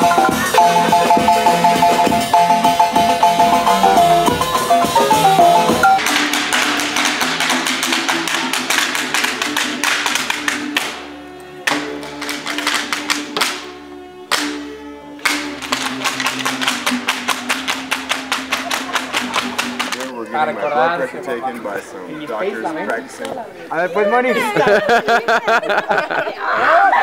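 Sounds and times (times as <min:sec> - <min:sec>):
violin music: 0:00.0 - 0:25.1
sandals stamping on stone: 0:06.0 - 0:11.0, 0:11.6 - 0:13.7, 0:14.3 - 0:14.6, 0:15.2 - 0:20.1.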